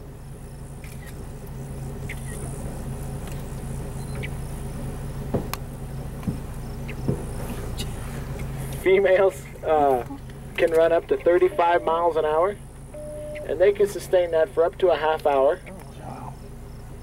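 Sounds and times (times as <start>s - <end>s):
insects buzzing: 0.0s - 17.0s
vehicle engine idling: 0.0s - 17.0s.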